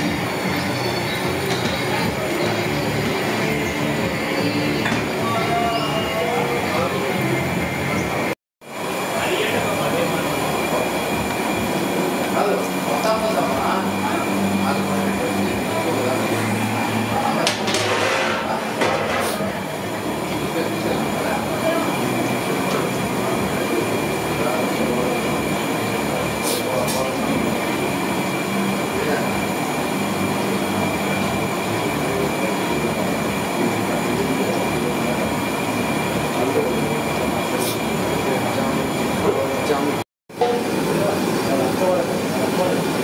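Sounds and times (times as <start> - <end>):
hot oil bubbling and sizzling: 0.0 - 5.3, 6.5 - 43.0.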